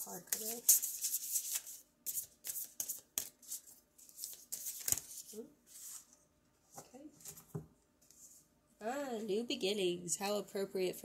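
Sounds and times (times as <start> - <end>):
cards shuffling: 0.3 - 6.1.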